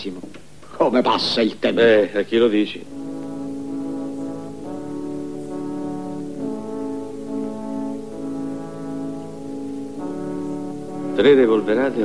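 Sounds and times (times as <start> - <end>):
orchestral brass chords: 2.8 - 12.0.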